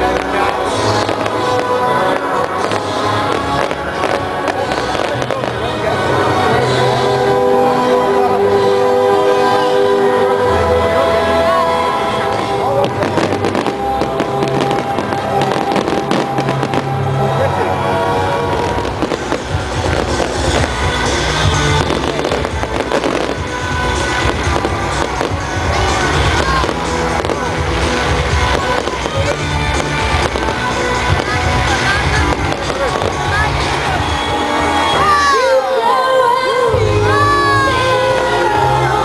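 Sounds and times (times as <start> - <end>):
fireworks bangs and crackles: 0.0 - 6.8, 11.2 - 35.0
music playing: 0.0 - 39.0.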